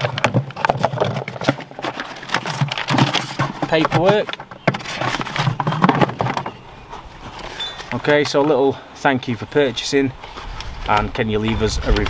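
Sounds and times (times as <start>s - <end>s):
paper and cardboard rustling: 0.0s - 8.8s.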